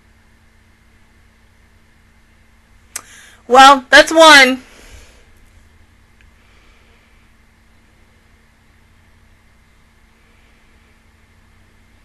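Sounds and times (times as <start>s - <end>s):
soft hiss: 2.7s - 3.6s.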